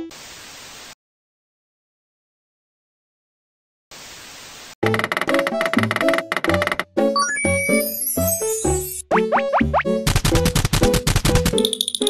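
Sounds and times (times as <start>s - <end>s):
static hiss burst: 0.0s - 1.0s.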